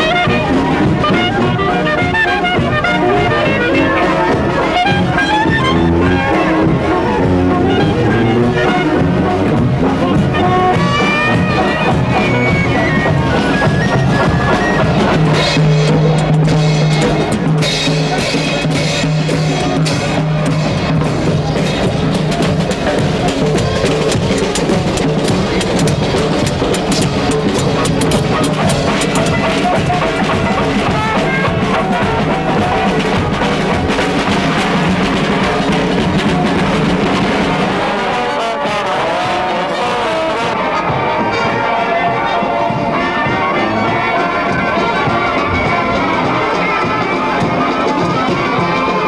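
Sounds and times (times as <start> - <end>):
drumming: 0.0 - 49.0
traditional jazz band playing: 0.0 - 49.0.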